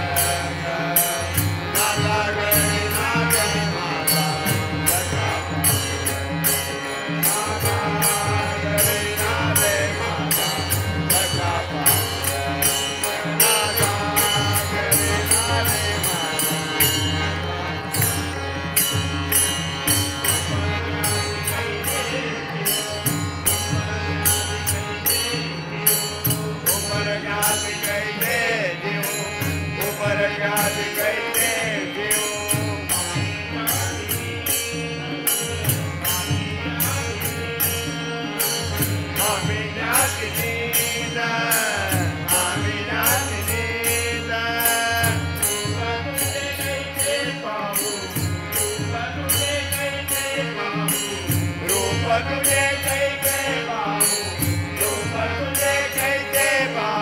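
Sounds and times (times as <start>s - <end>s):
jingling metallic percussion: 0.0s - 57.0s
men singing devotional song: 0.0s - 57.0s.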